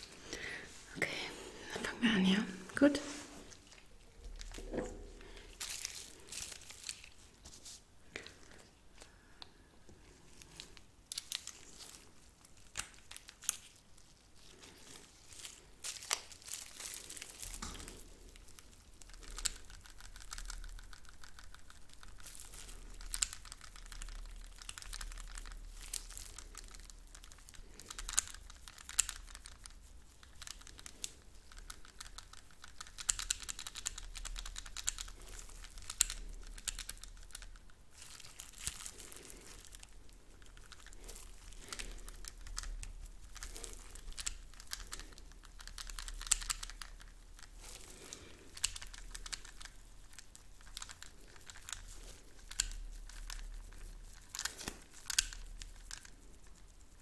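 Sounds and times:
plastic film crinkling: 3.0 - 7.8, 10.2 - 57.0.

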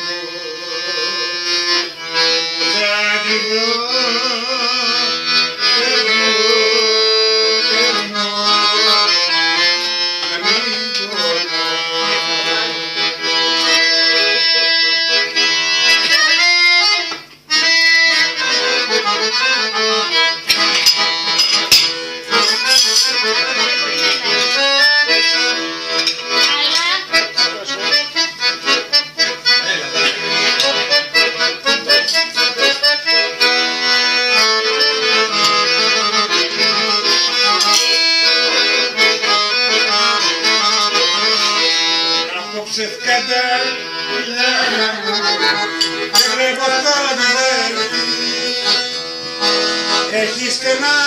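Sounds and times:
piano accordion playing: 0.0 - 51.0.

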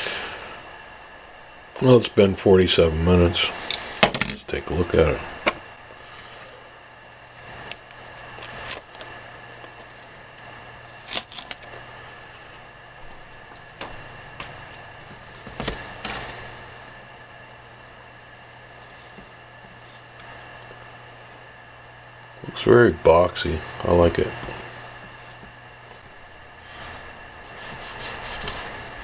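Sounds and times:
steady low hum: 0.0 - 29.0
plastic stencil rustling: 7.0 - 10.3.

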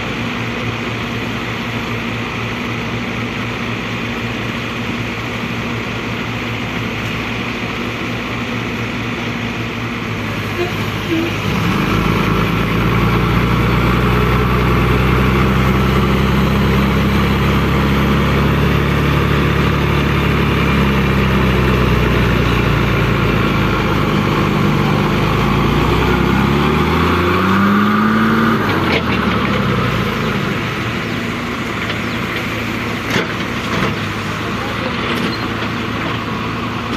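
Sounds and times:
diesel truck engine labouring: 0.0 - 36.9
rough engine rumble: 0.0 - 36.9.

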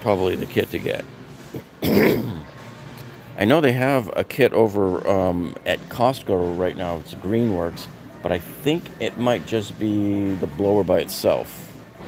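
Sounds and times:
man clearing throat: 1.6 - 2.5.

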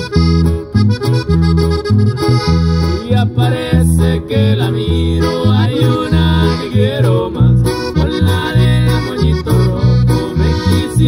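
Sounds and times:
accordion melody: 0.0 - 11.0
acoustic guitar: 0.0 - 11.0
bouncing bass line: 0.0 - 11.0.

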